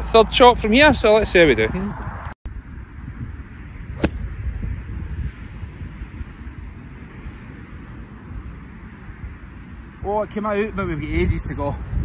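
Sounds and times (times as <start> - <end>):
wind rumble on microphone: 0.9 - 12.0
golf club striking ball: 3.9 - 4.4.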